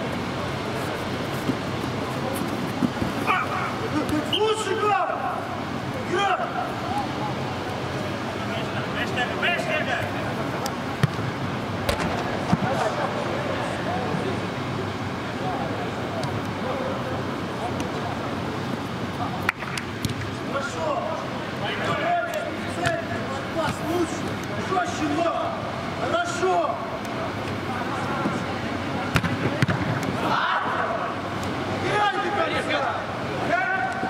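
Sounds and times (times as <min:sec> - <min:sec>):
echoing shouts of players: 0:03.2 - 0:07.2, 0:30.2 - 0:34.0
ball being kicked: 0:29.1 - 0:30.0.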